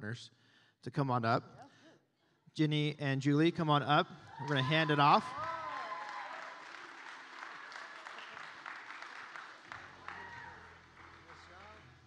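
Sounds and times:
crowd applauding: 4.3s - 12.0s.

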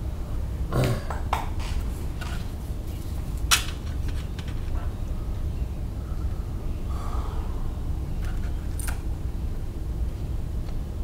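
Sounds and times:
steady low hum: 0.0s - 11.0s
cables clicking and rattling: 2.1s - 4.9s.

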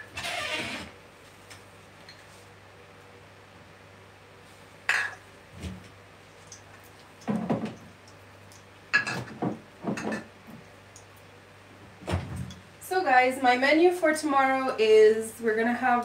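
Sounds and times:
glass and metal kitchenware clinking: 9.9s - 10.3s.

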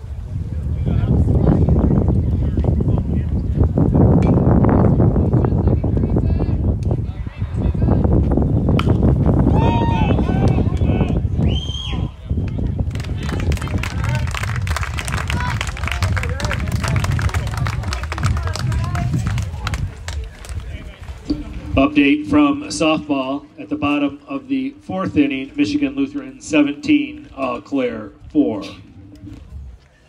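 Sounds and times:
low rumble: 21.1s - 30.0s.

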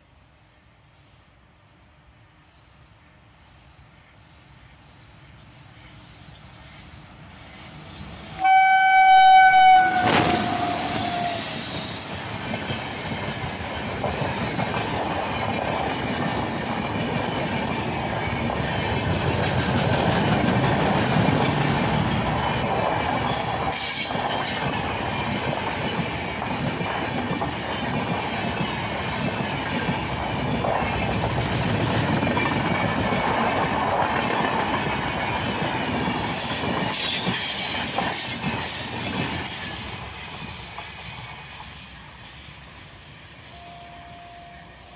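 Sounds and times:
train wheels rumbling on track: 0.5s - 44.9s
train horn: 8.4s - 12.0s, 43.5s - 44.9s.

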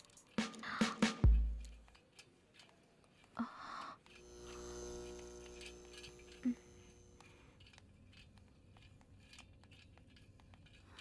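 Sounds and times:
hum of held tones: 4.1s - 7.5s.

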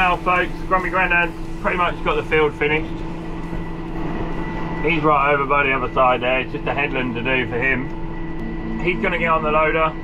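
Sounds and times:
tractor engine running: 0.0s - 9.9s
faint high whine: 0.0s - 10.0s.

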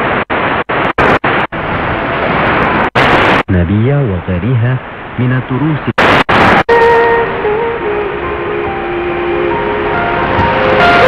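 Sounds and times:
burst of crackle: 0.0s - 3.5s, 6.0s - 6.8s
radio static: 0.0s - 7.2s
sustained radio notes: 0.0s - 11.0s.

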